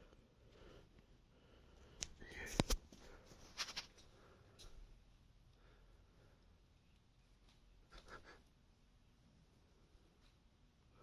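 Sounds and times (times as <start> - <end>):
person sniffing: 7.9 - 8.5.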